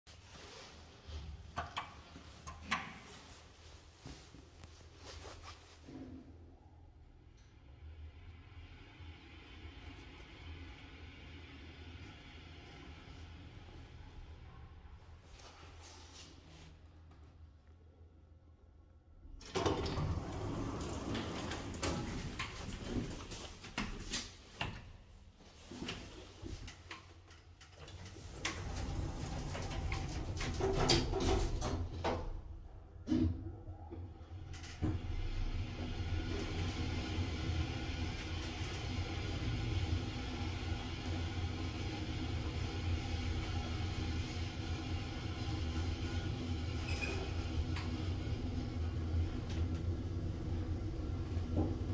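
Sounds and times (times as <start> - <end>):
sharp clicks and knocks: 1.6 - 3.0
elevator sliding doors running: 7.2 - 15.9, 19.2 - 51.9.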